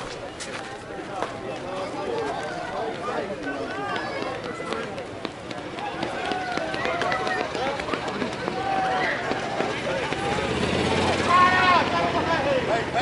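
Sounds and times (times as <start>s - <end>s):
people chattering and calling: 0.0s - 13.0s.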